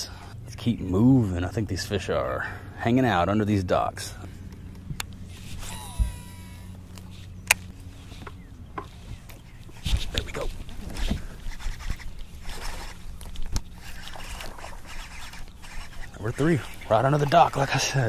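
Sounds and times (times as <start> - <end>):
steady low hum: 0.0 - 18.0
reeling and rod handling: 4.4 - 18.0
fishing reel spool whine: 5.2 - 8.6, 10.8 - 18.0.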